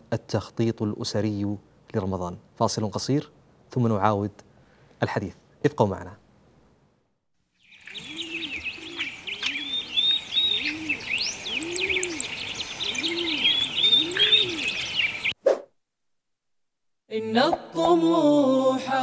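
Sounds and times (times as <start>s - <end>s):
small birds chirping: 7.5s - 15.4s
dove cooing: 7.9s - 15.3s.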